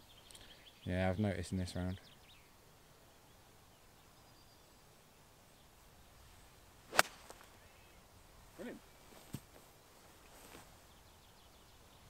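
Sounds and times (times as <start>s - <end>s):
golf club striking ball: 6.9s - 7.4s.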